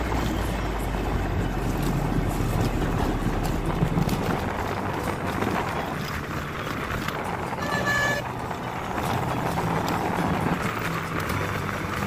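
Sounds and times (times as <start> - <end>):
low engine hum: 0.0 - 12.0
road and wind noise: 0.0 - 12.0
short horn toot: 7.6 - 8.3.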